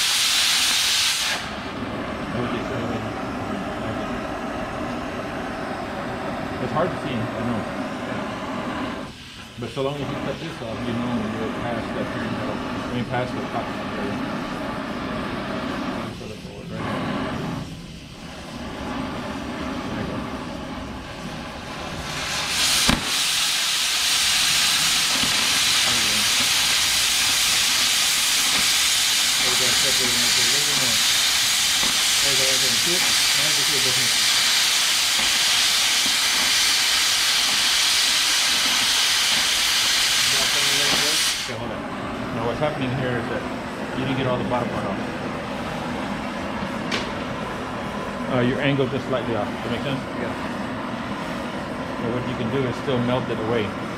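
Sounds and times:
cutting torch jet loud hiss: 0.0 - 53.9
torch flame hissing: 0.0 - 53.9
sharp pop: 22.6 - 23.4, 25.1 - 25.6, 46.8 - 47.3.

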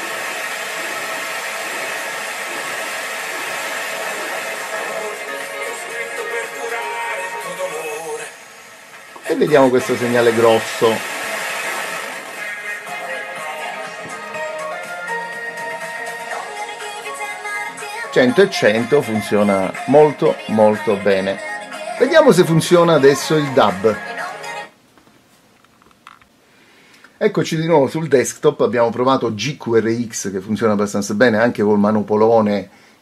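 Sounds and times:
radio static hiss: 0.0 - 14.6, 18.0 - 24.5
radio station music: 0.0 - 24.8.

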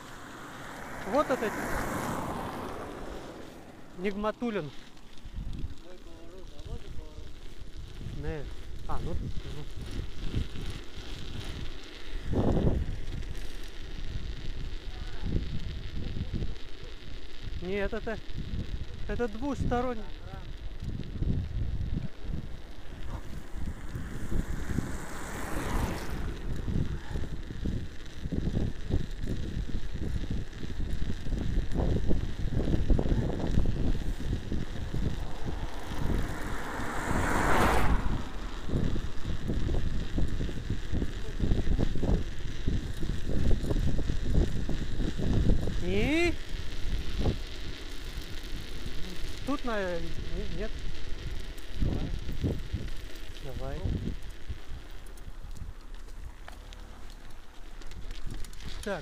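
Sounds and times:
bicycle tyres on packed snow: 0.0 - 59.0
wind buffeting microphone: 0.0 - 59.0
loud whooshes: 33.4 - 39.7.

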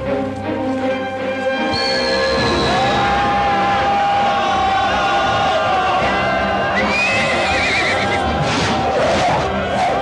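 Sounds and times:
music: 0.0 - 10.0
horse whinnying: 6.8 - 8.3.

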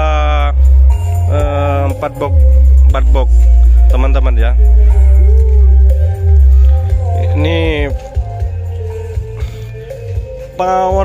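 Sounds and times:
loud music with heavy bass: 0.0 - 11.0
person singing: 4.6 - 11.0.

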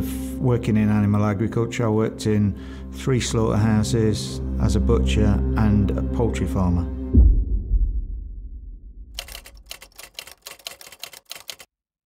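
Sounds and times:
typewriter keys clicking: 9.2 - 11.7.

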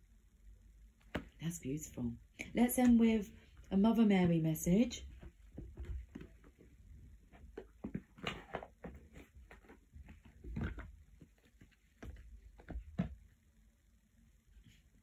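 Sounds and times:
soft taps and rustles of handling: 1.0 - 1.4, 2.4 - 13.4.

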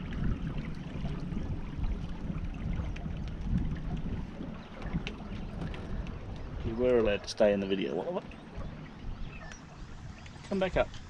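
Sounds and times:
water washing along hull: 0.0 - 11.0
wind rumbling on microphone: 0.0 - 11.0.

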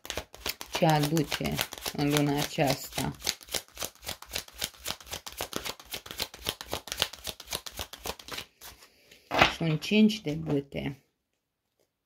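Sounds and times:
cards being shuffled: 0.0 - 9.2.

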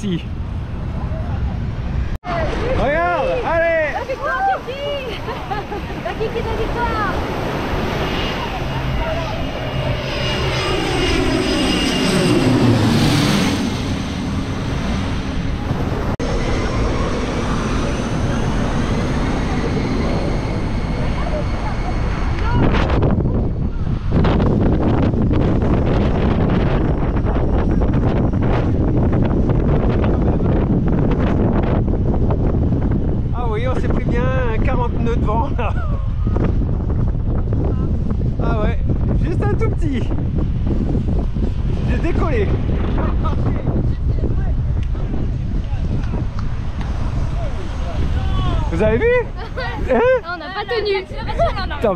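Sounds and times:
wind buffeting microphone: 0.0 - 51.9
small aircraft engine passing: 0.2 - 51.9.

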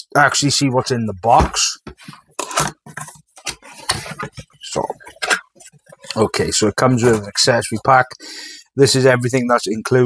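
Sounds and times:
man speaking: 0.0 - 1.9, 4.6 - 5.3, 6.0 - 10.0.

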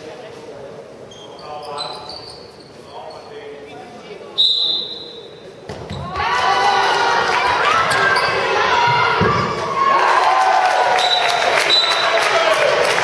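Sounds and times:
referee's whistle blast: 4.4 - 5.4.

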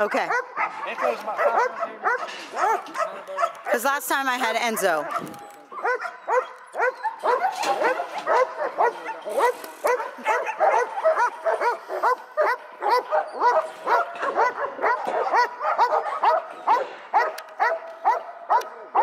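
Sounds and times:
dog barking: 0.0 - 3.9, 4.6 - 19.0.

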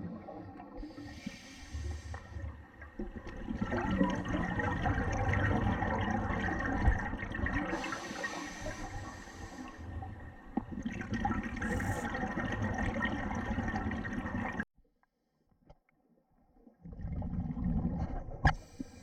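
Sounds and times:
regulator hissing inhale: 0.9 - 2.5, 7.7 - 9.9, 18.6 - 19.0
bubbles gurgling underwater: 2.4 - 8.3, 9.9 - 14.6, 16.8 - 18.5.

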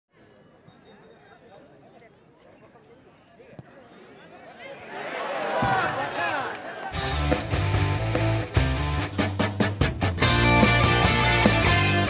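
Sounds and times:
spectators murmuring: 0.1 - 7.7.

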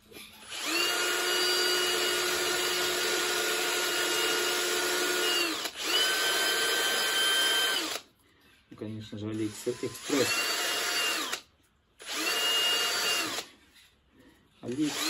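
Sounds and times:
power tool grinding plastic: 9.4 - 11.4, 14.6 - 15.0.

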